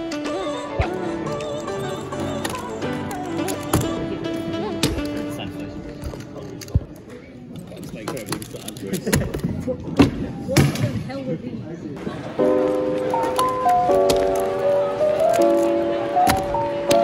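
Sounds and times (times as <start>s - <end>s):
background music: 0.0s - 7.1s, 12.0s - 17.0s.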